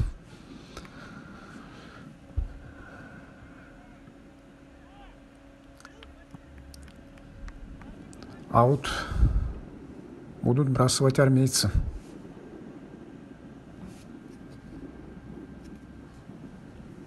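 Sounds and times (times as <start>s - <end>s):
steady low hum: 0.0s - 17.0s
dull thump: 2.4s - 2.7s
distant players shouting: 3.3s - 8.7s.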